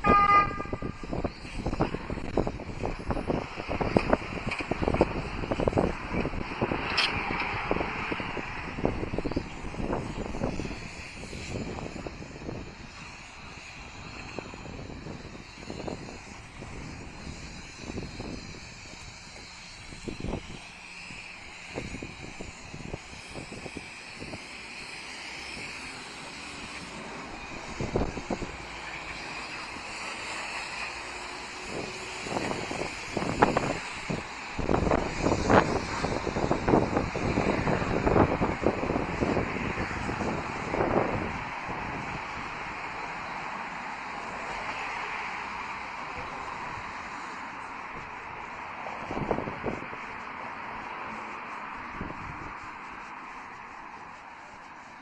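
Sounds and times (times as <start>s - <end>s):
passing traffic: 0.0s - 55.0s.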